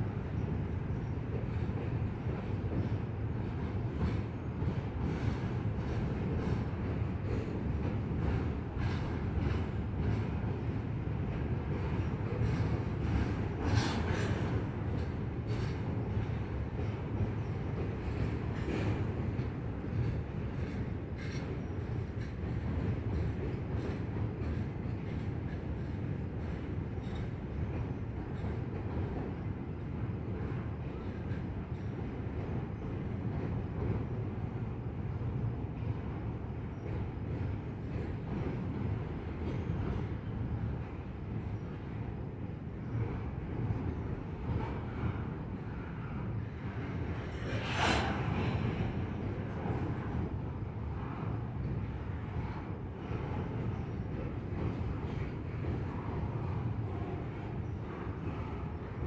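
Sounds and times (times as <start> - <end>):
train rumbling across steel bridge: 0.0 - 59.0.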